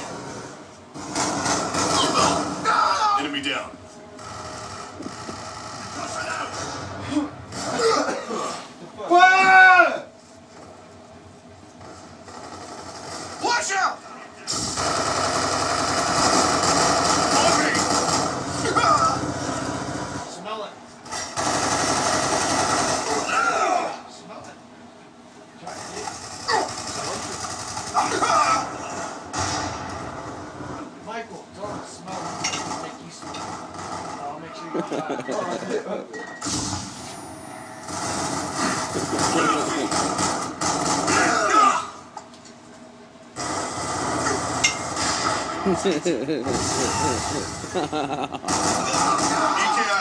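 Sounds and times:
people shouting: 23.1 - 24.0, 28.0 - 28.9, 41.1 - 42.0
people laughing: 34.6 - 36.2, 45.6 - 48.6.

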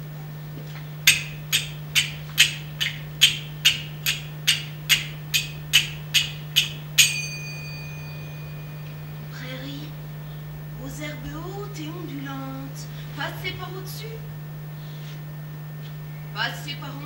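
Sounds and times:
finger cymbals striking: 1.0 - 10.0.

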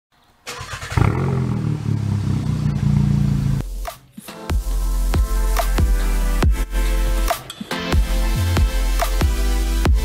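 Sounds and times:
engine revving: 0.5 - 3.7.

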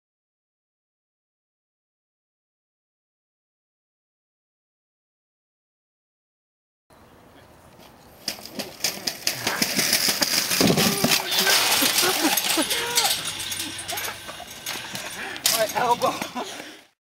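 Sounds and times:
metal shopping cart rattling: 8.2 - 16.8
shopping cart crashing: 8.3 - 16.6
people yelling: 10.6 - 16.5.

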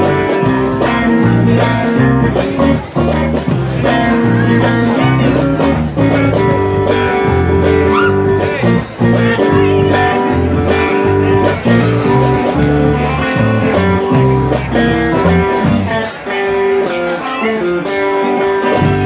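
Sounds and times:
bass guitar line: 0.0 - 19.0
electric guitar: 0.0 - 19.0.

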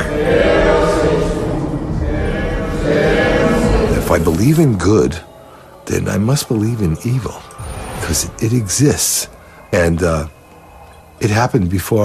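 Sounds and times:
choir holding a chord: 0.0 - 11.6.

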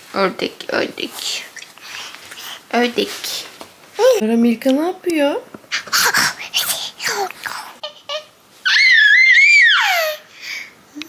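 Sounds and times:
baby laughing: 5.7 - 6.4, 7.1 - 9.0
baby high-pitched squeal: 7.8 - 10.2.

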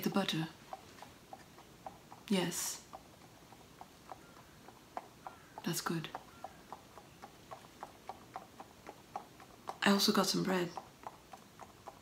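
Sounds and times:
horse hooves clip-clopping: 0.0 - 12.0.

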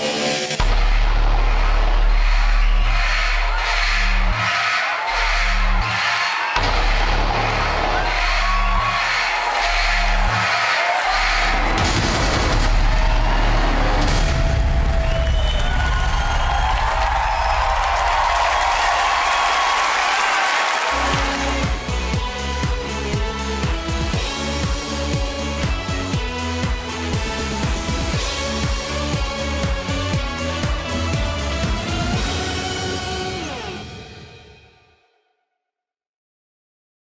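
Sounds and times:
dramatic stage music with bass beat: 0.0 - 20.1, 20.9 - 34.2
audience cheering and applause: 0.0 - 33.9.

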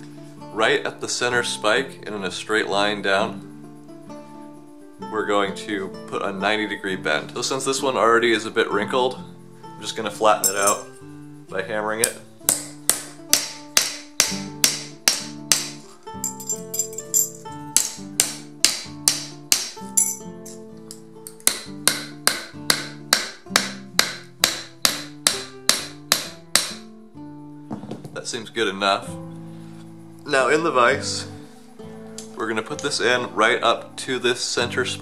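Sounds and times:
guitar background music: 0.0 - 35.0
hammer striking steel plate: 12.0 - 15.8, 17.8 - 20.2, 21.3 - 26.8.

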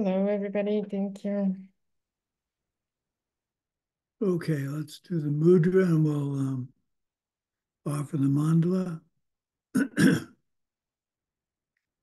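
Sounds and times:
man clearing his throat: 9.8 - 10.4.

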